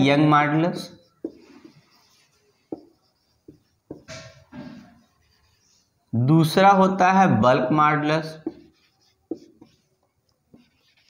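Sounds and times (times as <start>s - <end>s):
faint marker rubbing: 0.0s - 6.1s, 8.2s - 11.0s
marker strokes on whiteboard: 0.0s - 6.1s, 7.9s - 11.0s.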